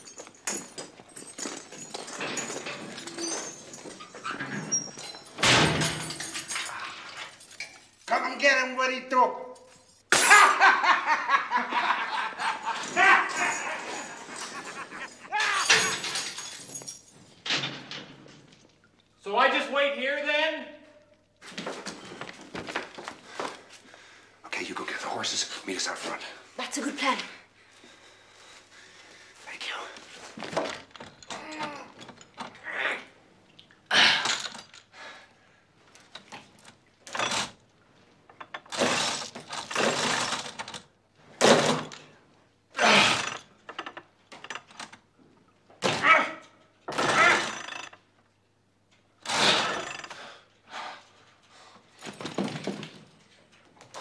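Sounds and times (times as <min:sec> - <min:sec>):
metal chains clinking: 0:00.0 - 0:08.2, 0:09.6 - 0:10.1, 0:12.4 - 0:18.8, 0:30.8 - 0:32.6, 0:34.0 - 0:35.0, 0:35.9 - 0:41.0, 0:46.9 - 0:48.1, 0:49.3 - 0:50.3
person whispering: 0:29.4 - 0:30.1.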